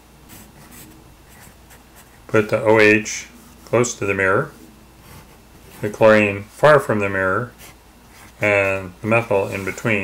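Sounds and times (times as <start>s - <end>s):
pencil scratching on paper: 0.3s - 2.2s, 7.5s - 8.4s.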